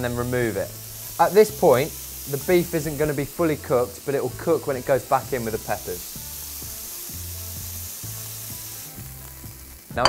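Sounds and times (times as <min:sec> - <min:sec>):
meat sizzling in a frying pan: 0:00.0 - 0:10.0.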